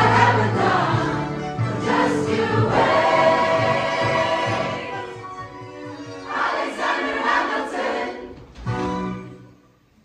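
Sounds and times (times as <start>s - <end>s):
mixed choir singing: 0.0s - 8.5s.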